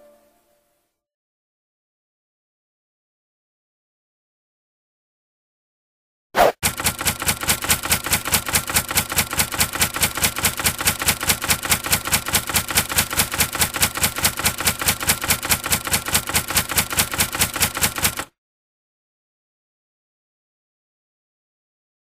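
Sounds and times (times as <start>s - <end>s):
rapid typewriter key clicks: 6.6s - 18.3s.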